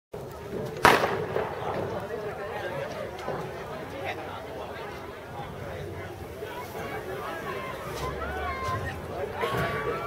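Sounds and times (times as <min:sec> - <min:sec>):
murmur of people talking: 0:00.2 - 0:10.0
loud sharp bang: 0:00.8 - 0:01.9.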